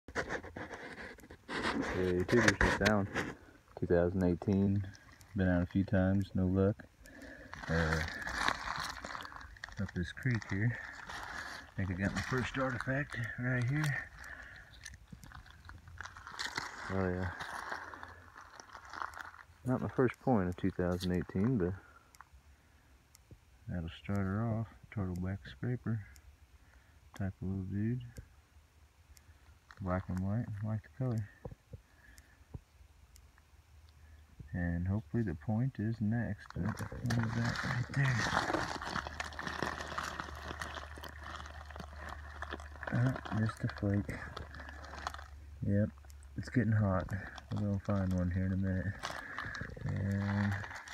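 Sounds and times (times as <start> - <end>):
gravel and stones crunching: 0.1 - 21.8, 36.4 - 50.9
small clicks and knocks: 7.0 - 22.3
creek water running: 7.1 - 20.4, 36.6 - 45.7, 46.3 - 50.9.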